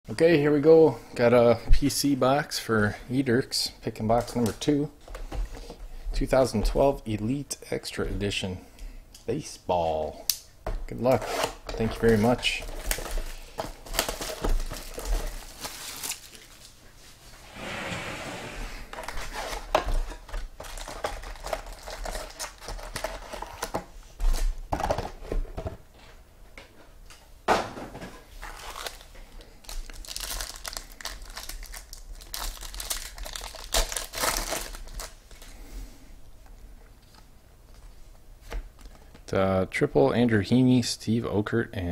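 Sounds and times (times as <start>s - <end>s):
plastic shrink wrap tearing: 11.4s - 16.8s, 20.6s - 23.7s, 28.4s - 35.5s
foil packs crinkling and tearing: 11.8s - 16.8s, 18.9s - 24.5s, 28.4s - 35.6s.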